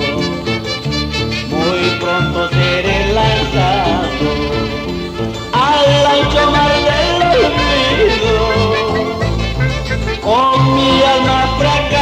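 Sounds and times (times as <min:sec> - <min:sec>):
folk band music: 0:00.0 - 0:12.0.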